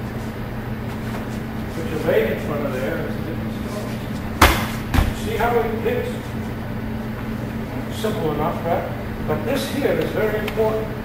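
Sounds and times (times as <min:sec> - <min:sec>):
kick striking heavy bag: 0:04.4 - 0:05.4.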